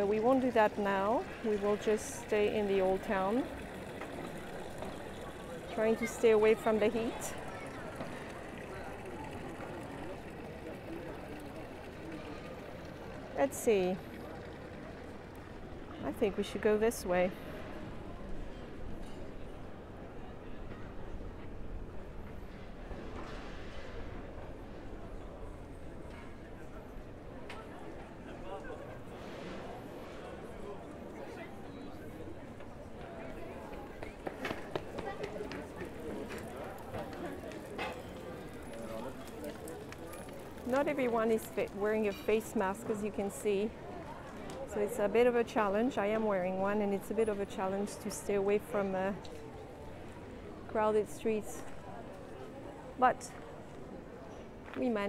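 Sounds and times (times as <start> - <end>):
passers-by talking: 0.0 - 23.1, 23.9 - 55.0
distant voices and chatter: 0.0 - 55.0.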